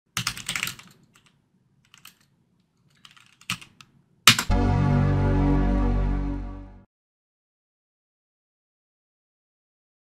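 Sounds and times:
keyboard typing: 0:02.9 - 0:04.6.

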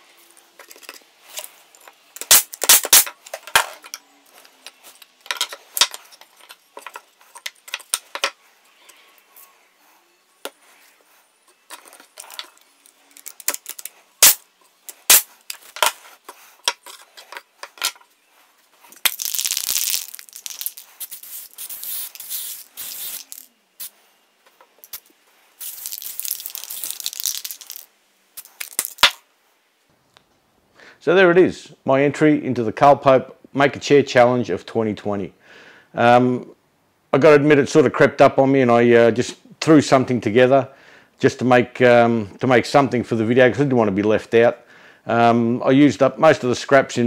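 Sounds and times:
nail gun shots: 0:02.2 - 0:03.1
spray paint can hissing: 0:14.2 - 0:14.4, 0:15.0 - 0:15.3, 0:19.1 - 0:24.0, 0:25.6 - 0:27.8.

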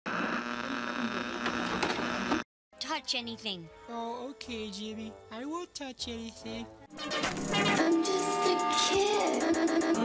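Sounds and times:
buzzing static hiss: 0:00.1 - 0:02.4
hum: 0:00.1 - 0:02.4.

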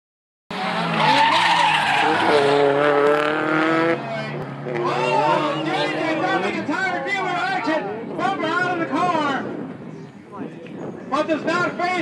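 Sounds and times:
car engine at high revs: 0:00.5 - 0:06.6
tyres skidding: 0:00.5 - 0:09.6.

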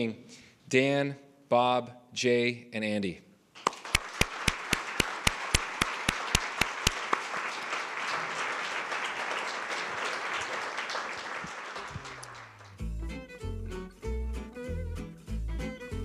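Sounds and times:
audience applauding: 0:03.6 - 0:12.8
loud sharp hand claps: 0:03.6 - 0:12.8
music: 0:12.6 - 0:16.0.

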